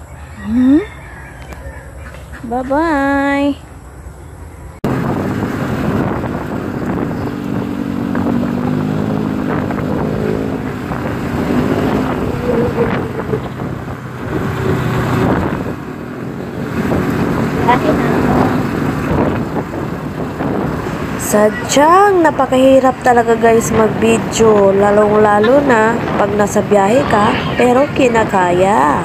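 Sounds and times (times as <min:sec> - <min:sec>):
vehicle engine droning: 0:04.2 - 0:29.0
wind buffeting microphone: 0:04.4 - 0:29.0.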